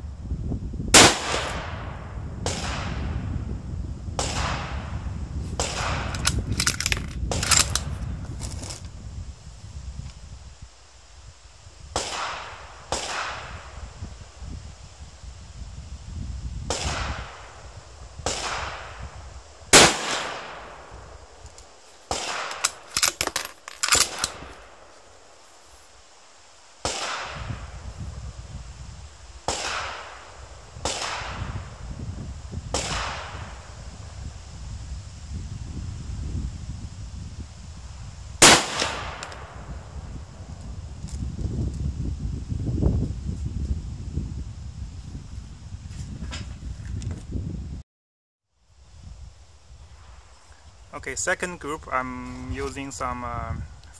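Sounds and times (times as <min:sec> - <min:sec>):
rifle shots echoing: 0:01.0 - 0:01.8, 0:19.8 - 0:20.8, 0:38.4 - 0:39.3
sharp metallic clicks: 0:06.1 - 0:07.9, 0:22.4 - 0:24.6.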